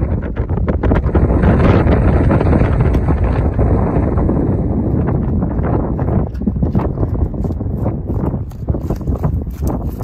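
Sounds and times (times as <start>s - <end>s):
wind buffeting microphone: 0.0s - 10.0s
horse hoofbeats: 4.9s - 10.0s.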